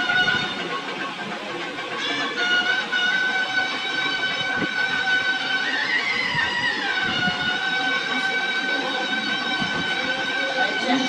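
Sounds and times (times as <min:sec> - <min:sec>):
music playing on tv: 0:00.0 - 0:11.0.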